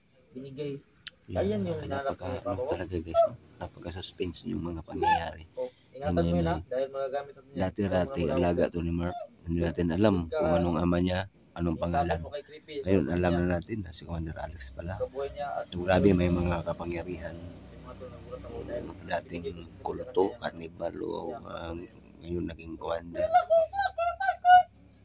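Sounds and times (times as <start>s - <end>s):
crickets chirping: 0.0s - 25.0s
people talking: 0.4s - 24.7s.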